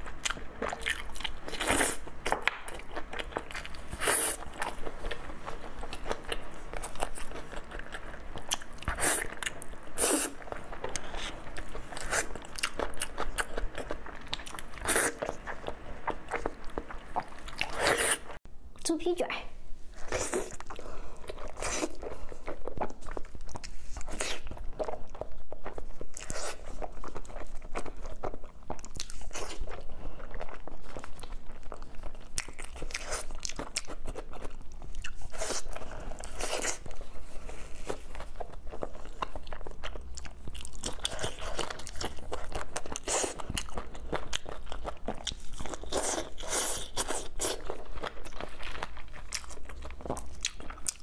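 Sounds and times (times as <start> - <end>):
biting and chewing: 20.0 - 51.0.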